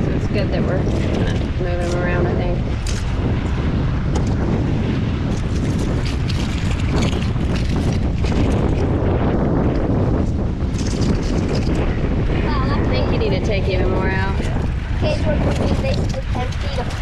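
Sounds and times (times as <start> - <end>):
wind rumbling on microphone: 0.0 - 17.0.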